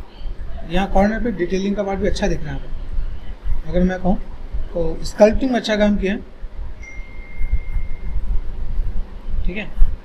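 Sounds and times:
low background rumble: 0.0s - 10.0s
faint high-pitched tone: 6.8s - 8.4s.

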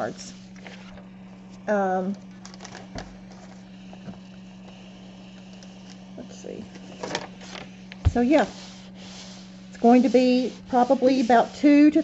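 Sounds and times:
steady low hum: 0.0s - 12.0s
iron sliding over paper: 3.0s - 12.0s
soft thump: 8.0s - 8.3s.

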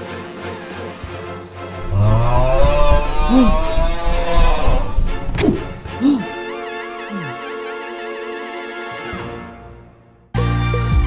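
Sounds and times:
low moo-like call: 1.8s - 6.3s.

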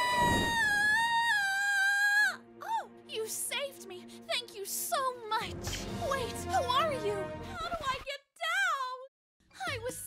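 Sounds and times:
cartoon girl's high-pitched wail: 0.0s - 2.3s.

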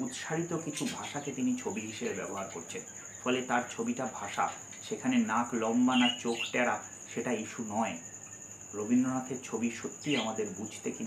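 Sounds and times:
man talking: 0.0s - 8.0s, 8.8s - 11.0s
cricket chirring: 0.0s - 11.0s.

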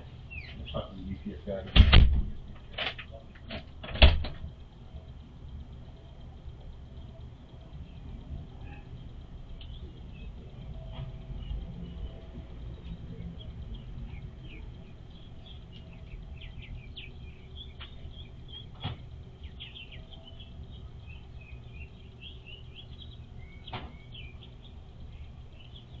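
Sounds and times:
small birds chirping: 0.0s - 1.7s, 4.4s - 26.0s
steady low rumble: 0.0s - 26.0s
sharp clicks: 9.6s - 9.8s.

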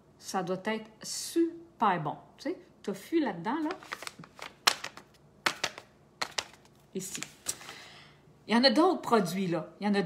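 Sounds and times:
pouch crinkling: 3.6s - 7.8s.

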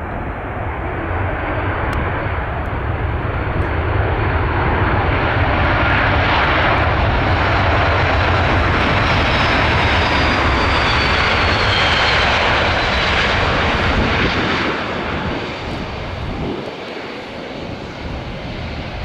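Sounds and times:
jet engines running: 0.0s - 19.0s.

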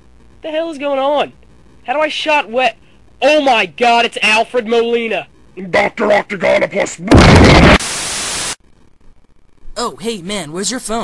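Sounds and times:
steady hiss: 0.0s - 8.6s
harsh static noise: 0.0s - 11.0s.

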